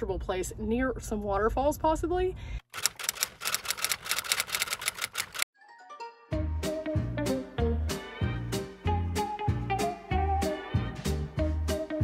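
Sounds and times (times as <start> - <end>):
typewriter key clicks: 2.8 - 5.4.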